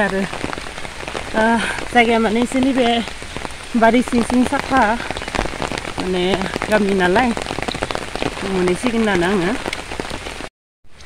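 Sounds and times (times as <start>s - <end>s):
steady rain falling: 0.0s - 11.0s.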